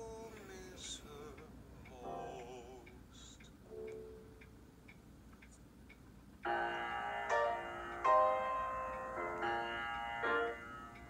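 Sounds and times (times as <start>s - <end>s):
grand piano chords: 2.0s - 2.8s, 6.4s - 11.0s.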